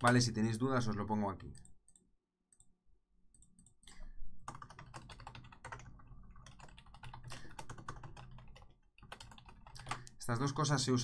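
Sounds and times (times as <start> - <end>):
typing on computer keyboard: 3.3 - 10.2.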